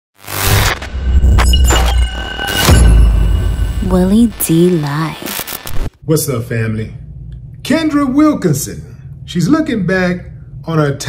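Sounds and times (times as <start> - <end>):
sharp crashing hits: 0.3 - 5.9.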